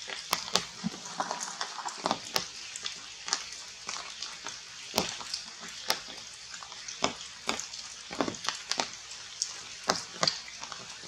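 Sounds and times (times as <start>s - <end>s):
ticks and crackles in foliage: 0.0s - 11.0s.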